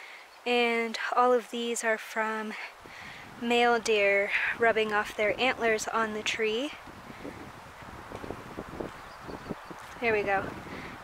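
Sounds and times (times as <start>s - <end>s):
wind on microphone: 2.8s - 11.0s.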